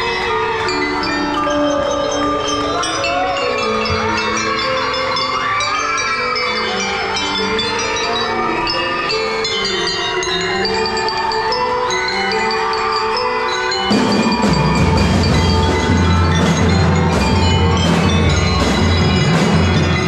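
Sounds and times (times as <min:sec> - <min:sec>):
marimbas playing slow melody: 0:00.0 - 0:20.0.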